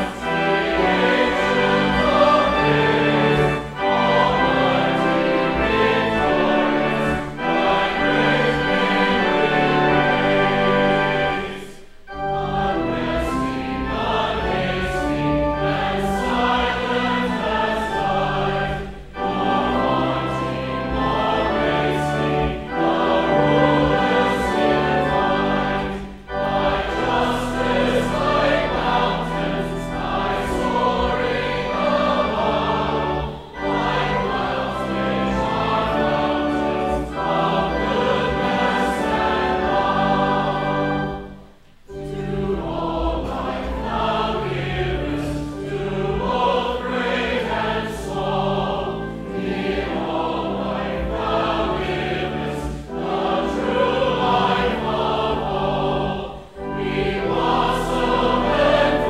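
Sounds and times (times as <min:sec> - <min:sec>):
choir and congregation singing hymn: 0:00.0 - 0:59.0
pipe organ: 0:00.0 - 0:59.0.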